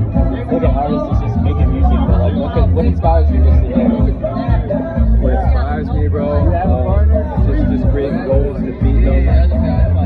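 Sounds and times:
loud music with heavy bass: 0.0s - 10.0s
voices talking: 0.0s - 10.0s.

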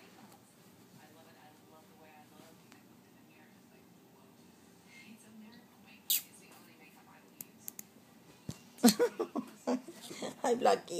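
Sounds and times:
person laughing: 8.8s - 10.4s.

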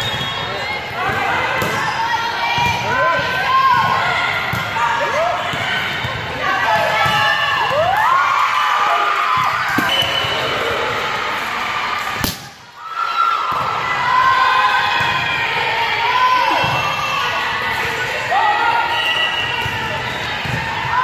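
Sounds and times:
volleyball being struck: 12.2s - 12.6s.

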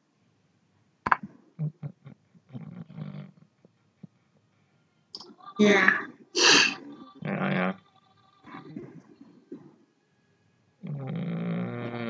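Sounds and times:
faint low human murmur: 1.6s - 3.4s, 5.2s - 7.8s, 8.4s - 9.7s.

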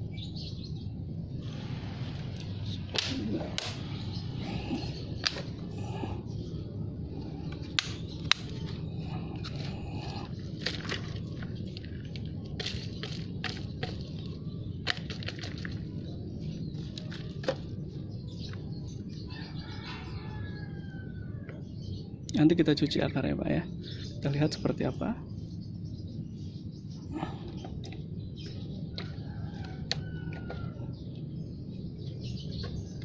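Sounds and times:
steady low rumble: 0.0s - 33.0s.

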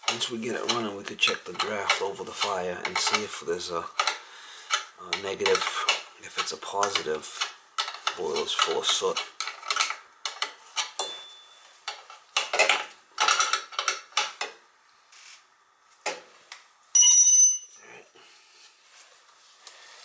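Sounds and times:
bell-like metallic ring: 11.0s - 11.7s, 17.0s - 17.9s.

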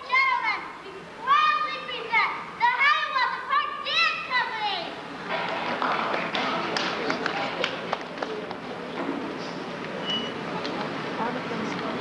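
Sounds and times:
children shouting: 0.0s - 4.9s.

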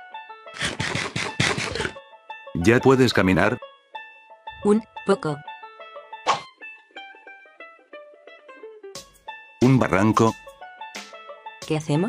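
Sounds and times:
background music: 0.0s - 12.0s
crunching bite into apple: 0.6s - 2.0s.

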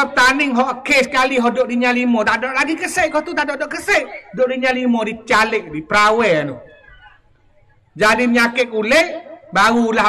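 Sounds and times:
man speaking through microphone: 0.0s - 6.7s, 8.0s - 10.0s.

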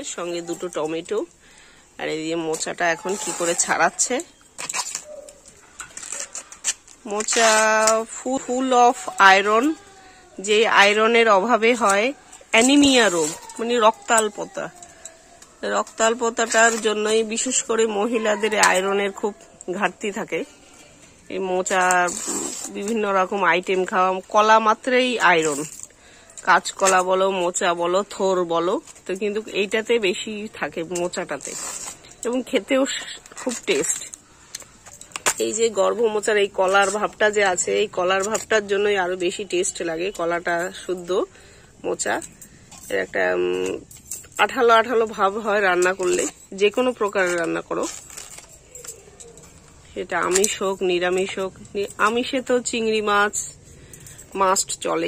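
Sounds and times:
person talking: 0.0s - 1.4s, 2.0s - 4.3s, 7.0s - 15.0s, 21.3s - 25.8s, 35.4s - 42.3s, 42.9s - 47.9s, 49.9s - 53.6s, 54.2s - 55.0s
snapping and rustling bracts: 2.3s - 27.6s, 28.2s - 38.8s, 43.5s - 52.2s.

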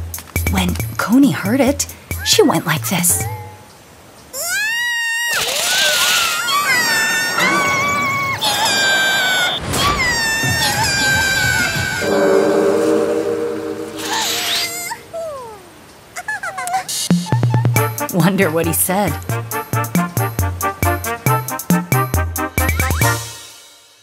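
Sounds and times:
cartoon squeals and shrieks: 4.4s - 12.0s, 14.0s - 15.6s
low steady held sound: 12.0s - 15.0s.

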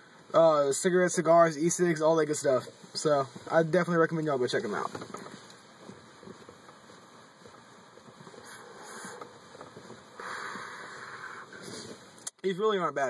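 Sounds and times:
faint background noise: 0.0s - 13.0s
man exhaling smoke: 8.4s - 9.3s, 10.1s - 12.2s.

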